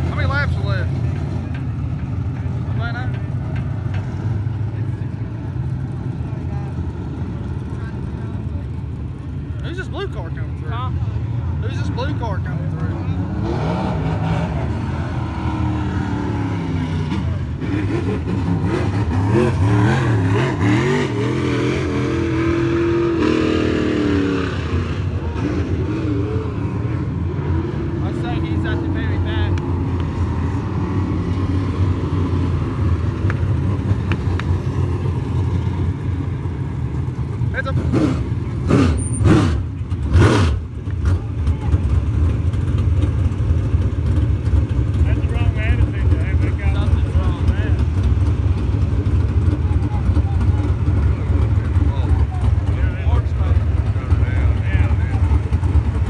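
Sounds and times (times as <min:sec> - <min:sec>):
race car engines: 0:00.0 - 0:56.0.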